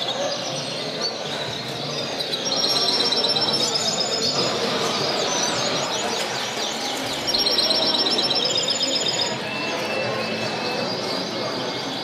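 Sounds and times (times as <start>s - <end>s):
canaries trilling: 0.0s - 12.0s.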